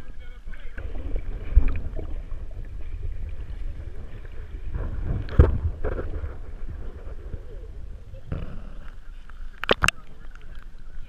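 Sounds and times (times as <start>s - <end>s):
low rumble of water on housing: 0.0s - 11.0s
seawater sloshing and lapping: 0.1s - 8.3s.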